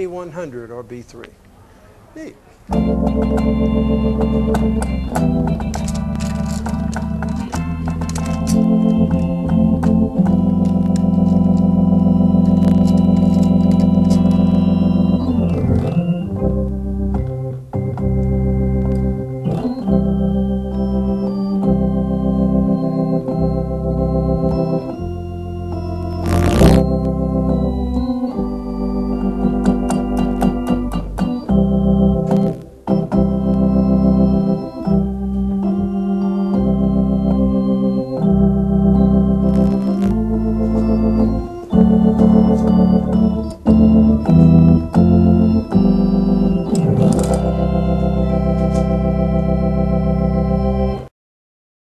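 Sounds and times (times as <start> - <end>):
organ playing sustained chords: 0.0 - 1.2, 2.7 - 51.1
bass line: 2.7 - 51.0.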